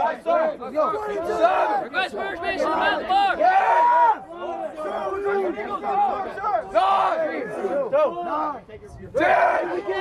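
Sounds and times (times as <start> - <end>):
men shouting over one another: 0.0 - 10.0.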